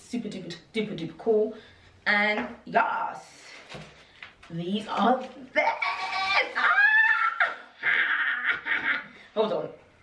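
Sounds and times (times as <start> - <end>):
woman exclaiming: 5.5 - 7.6
woman laughing: 7.0 - 9.2.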